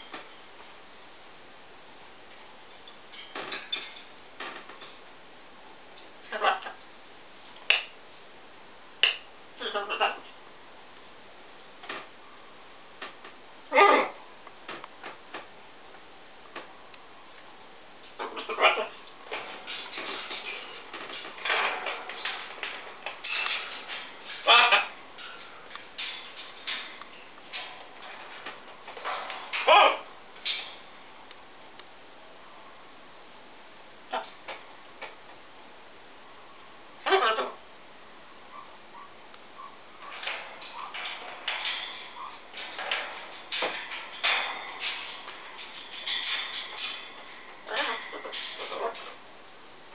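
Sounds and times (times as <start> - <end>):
parrot throaty chatter: 18.2 - 19.0, 24.4 - 24.9, 44.8 - 49.2.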